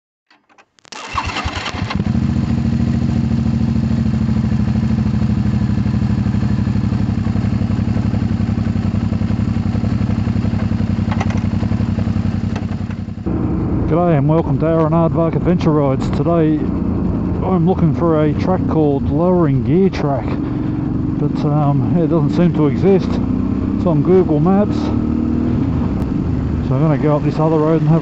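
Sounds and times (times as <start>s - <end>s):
motorcycle starter cranking: 0.3s - 2.2s
motorcycle engine idling: 1.2s - 28.0s.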